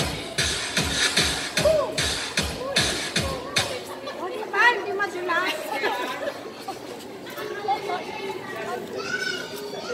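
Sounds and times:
women chattering: 0:02.6 - 0:09.9.

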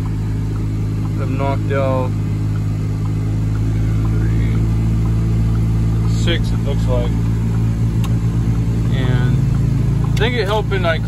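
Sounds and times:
truck engine humming from cab: 0:00.0 - 0:11.0.

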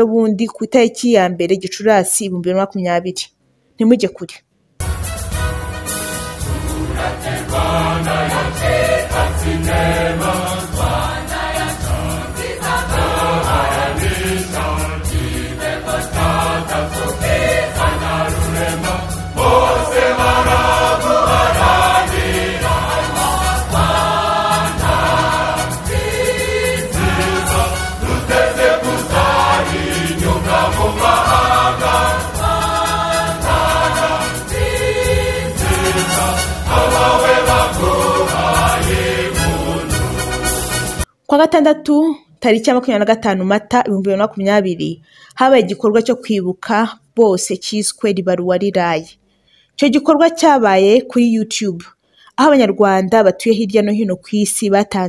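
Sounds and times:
instrumental backing with bass notes: 0:04.8 - 0:41.1
choir singing: 0:06.1 - 0:41.1.

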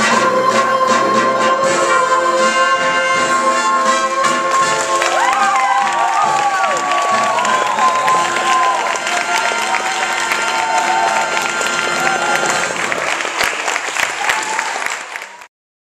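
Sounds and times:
crowd cheering and calling out: 0:03.5 - 0:15.5
audience applauding: 0:04.4 - 0:15.5.

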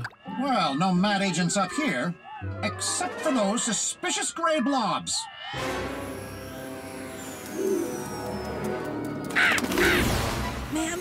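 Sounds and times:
background music: 0:01.2 - 0:04.4, 0:05.5 - 0:11.0
cartoon pigeon calls: 0:09.3 - 0:10.2.

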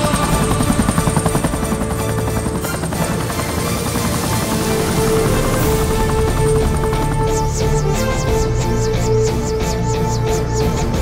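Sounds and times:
background music: 0:00.0 - 0:11.0
helicopter rotor blades chopping: 0:00.0 - 0:11.0.

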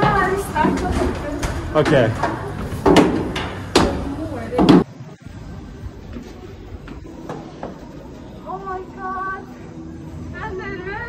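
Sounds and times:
footsteps on metal stairs: 0:00.0 - 0:04.9.

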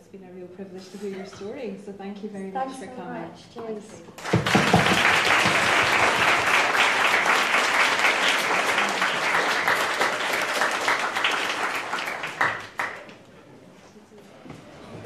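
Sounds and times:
audience applauding: 0:04.2 - 0:13.4.

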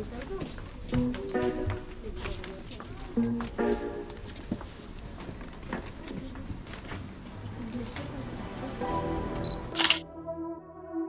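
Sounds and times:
passers-by talking: 0:00.0 - 0:10.0
background music: 0:00.9 - 0:02.2, 0:03.1 - 0:04.5, 0:07.4 - 0:11.0
camera shutter click: 0:09.4 - 0:10.0.

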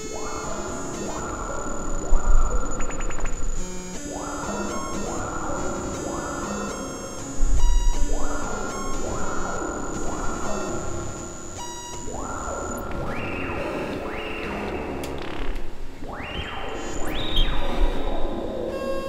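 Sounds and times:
synthesizer note pattern: 0:00.0 - 0:19.0.

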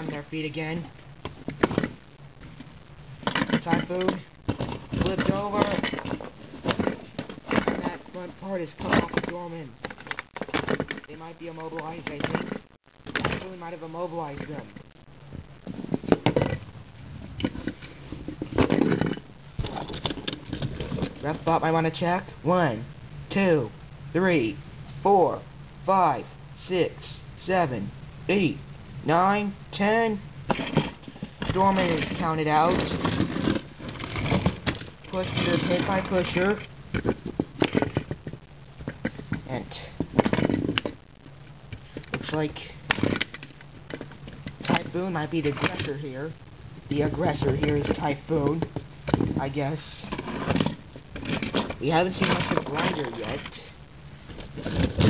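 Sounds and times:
plastic bricks clicking and rattling: 0:08.8 - 0:13.5, 0:30.5 - 0:41.0, 0:41.7 - 0:45.9.

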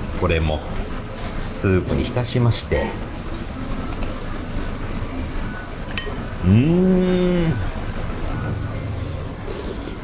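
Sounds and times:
man humming while eating: 0:06.4 - 0:07.8.

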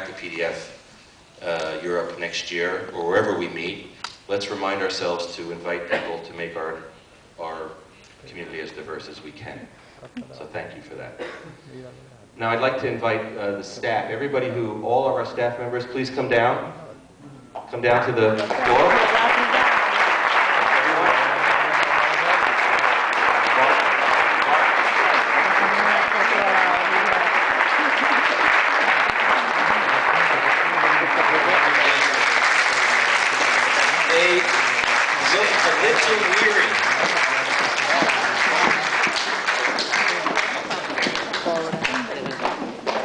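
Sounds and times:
audience applauding: 0:18.4 - 0:43.0
voices: 0:20.7 - 0:33.1, 0:34.0 - 0:42.7.

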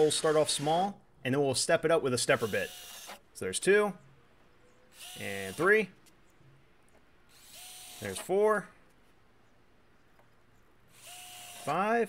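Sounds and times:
power drill whining: 0:02.4 - 0:03.2, 0:05.0 - 0:05.7, 0:07.3 - 0:08.3, 0:10.9 - 0:11.9.

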